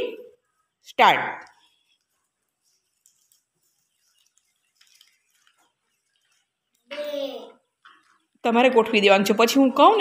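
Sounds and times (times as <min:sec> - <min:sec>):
paper slips rustling: 0:01.4 - 0:06.8.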